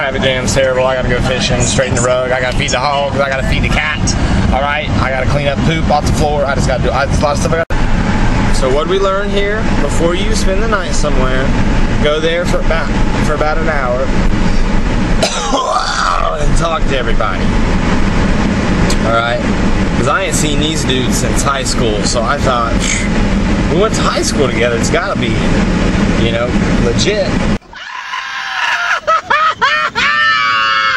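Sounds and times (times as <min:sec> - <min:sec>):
truck cabin rumble: 0:00.0 - 0:27.7
man coughing and clearing throat: 0:15.2 - 0:15.8
high-pitched cries: 0:27.6 - 0:30.9
long held cry: 0:27.6 - 0:30.9.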